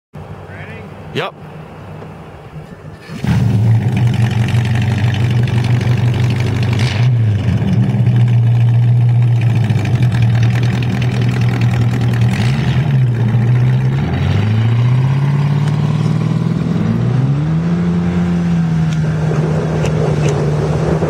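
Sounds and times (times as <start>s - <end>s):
boat engine idling: 2.9s - 14.0s.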